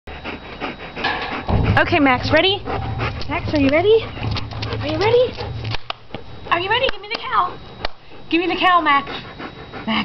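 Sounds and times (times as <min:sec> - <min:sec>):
dog panting quickly: 0:00.1 - 0:10.0.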